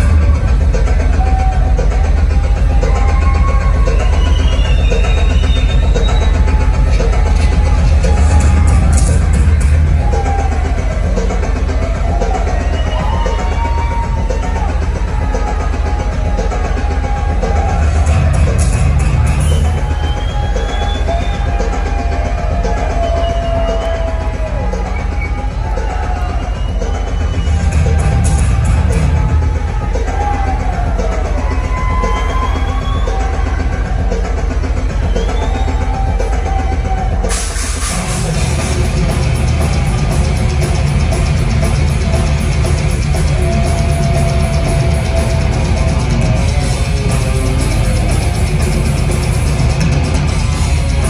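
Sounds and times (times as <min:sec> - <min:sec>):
thrash metal band playing live: 0:00.0 - 0:51.0.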